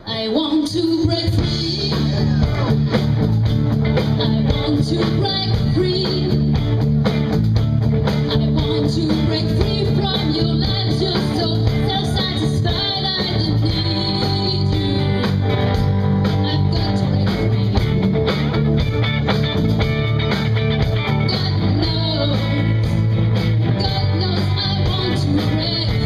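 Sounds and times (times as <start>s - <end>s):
woman singing: 0.0s - 2.4s, 4.0s - 6.6s, 8.1s - 18.0s, 21.0s - 26.0s
electric guitars: 0.0s - 26.0s
bass guitar: 0.7s - 26.0s
drum kit beat: 0.9s - 26.0s.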